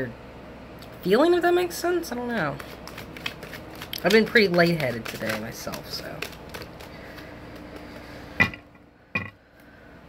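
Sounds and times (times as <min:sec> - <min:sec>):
cards being shuffled: 0:02.2 - 0:08.3.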